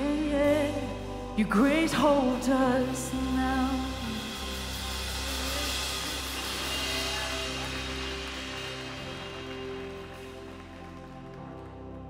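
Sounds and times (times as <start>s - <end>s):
low bass notes: 0.0s - 12.0s
cymbals: 0.9s - 11.1s.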